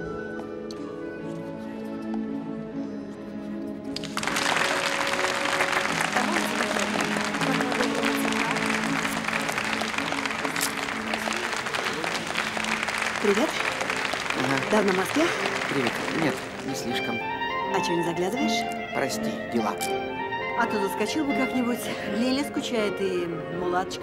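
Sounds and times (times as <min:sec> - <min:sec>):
background music: 0:00.0 - 0:24.0
audience applauding loudly: 0:04.0 - 0:17.3.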